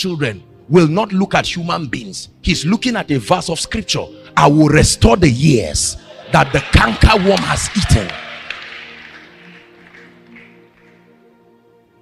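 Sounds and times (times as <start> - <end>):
soft sustained background music: 0.0 - 12.0.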